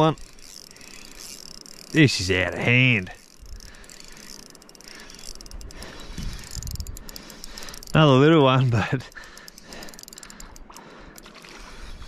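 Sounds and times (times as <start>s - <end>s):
fishing reel ticking: 0.0s - 12.0s.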